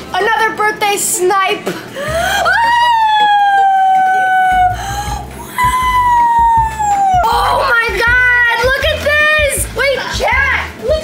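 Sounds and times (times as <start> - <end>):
woman squealing: 2.2 - 7.8.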